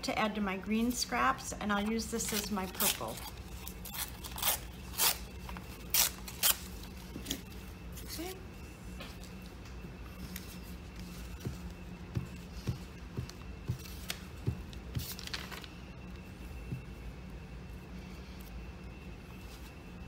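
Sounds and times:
paper tearing crackles: 1.9 - 7.4
paper rustling: 10.1 - 15.8.

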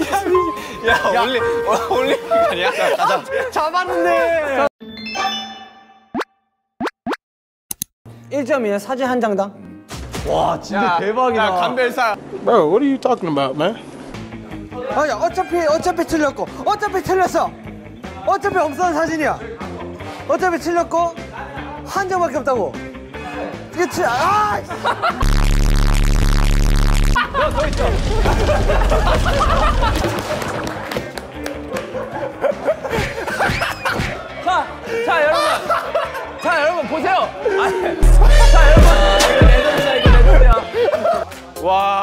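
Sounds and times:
bright chime: 4.8 - 6.1
loud distorted low buzzing: 25.2 - 27.2, 38.0 - 39.4.

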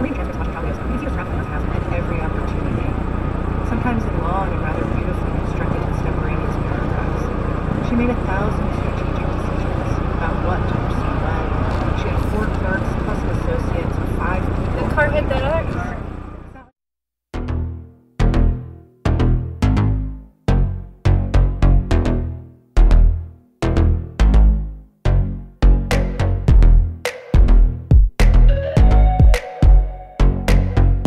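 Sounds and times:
car driving at highway speed: 0.0 - 16.6.

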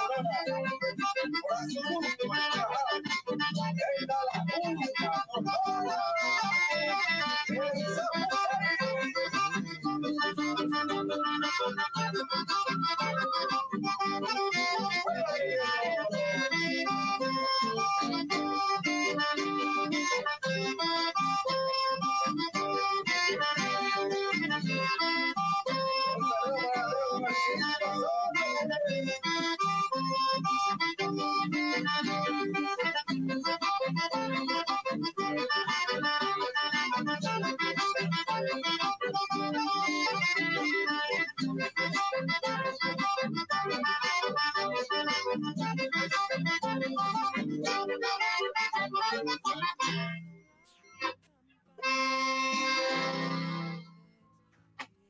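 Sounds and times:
button accordion folk tune: 0.0 - 55.0
strummed acoustic guitar: 51.8 - 54.1.

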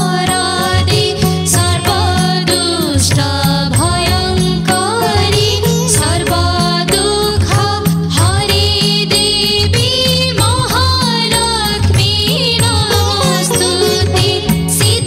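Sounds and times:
instrumental accompaniment: 0.0 - 15.0
steady percussion beat: 0.0 - 15.0
woman singing a hymn: 0.0 - 15.0.

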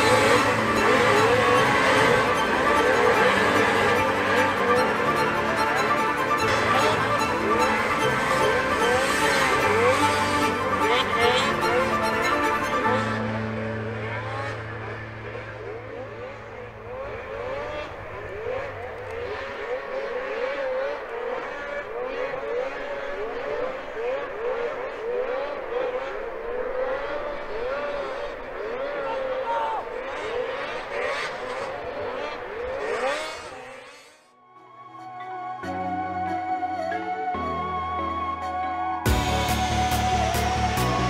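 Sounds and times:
background music: 0.0 - 17.9, 34.4 - 41.0
snowmobile engines revving: 0.0 - 34.4, 39.1 - 41.0.

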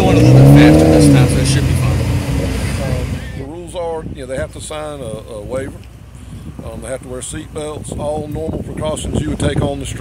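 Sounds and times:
car engine pulling away: 0.0 - 3.4
man talking: 0.0 - 5.9, 6.5 - 10.0.

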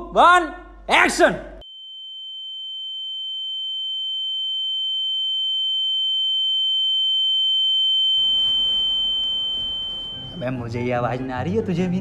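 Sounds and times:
fainter lower tone: 1.7 - 11.0
high-pitched electronic tone: 7.1 - 10.6.

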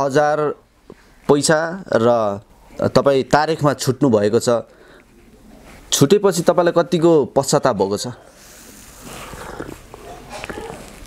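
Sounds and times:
man slurping a drink: 8.6 - 11.0.

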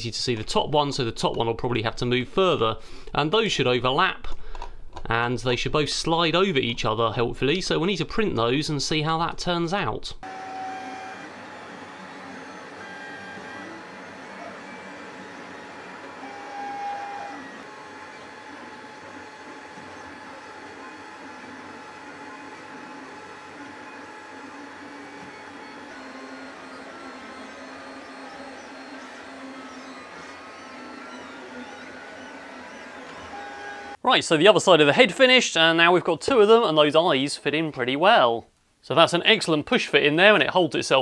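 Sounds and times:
cooling fans humming: 10.2 - 34.0
stepper motors whining: 10.2 - 34.0.

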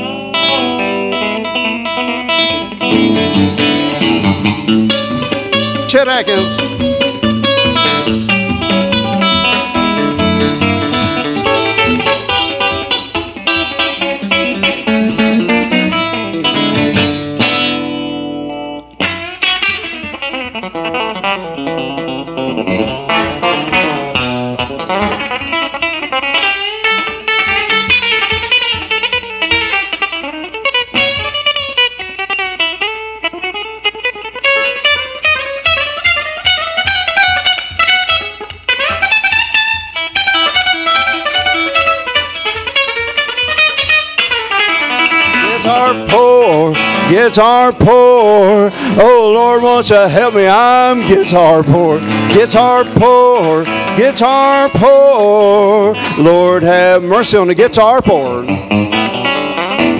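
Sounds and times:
electric guitar country solo: 0.0 - 59.9.

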